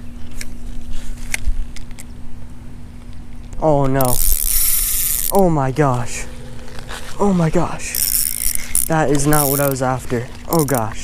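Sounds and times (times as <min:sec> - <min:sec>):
fishing rod handling noise: 0:03.0 - 0:05.5, 0:06.4 - 0:11.0
fishing reel clicks: 0:04.0 - 0:05.4, 0:07.9 - 0:09.8, 0:10.5 - 0:11.0.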